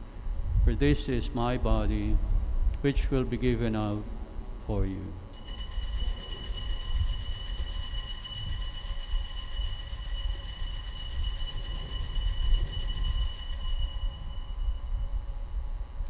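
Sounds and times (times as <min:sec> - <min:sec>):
low steady rumble: 0:00.0 - 0:16.0
altar bells ringing: 0:05.4 - 0:15.3.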